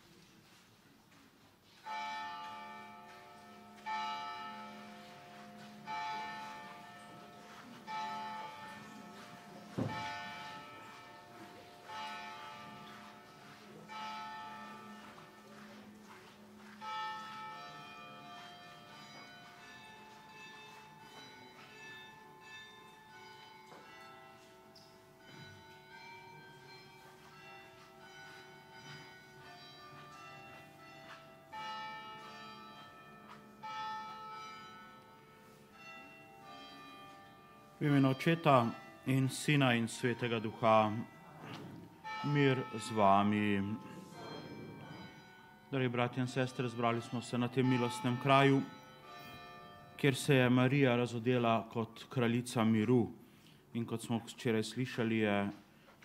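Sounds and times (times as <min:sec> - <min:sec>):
church bells ringing: 0:01.6 - 0:56.0.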